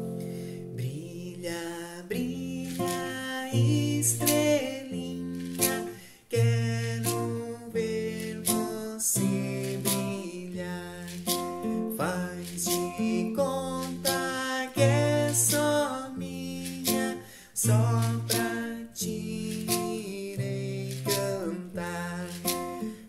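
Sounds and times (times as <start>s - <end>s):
classical guitar strummed: 0.0s - 23.0s
person singing: 0.0s - 23.0s.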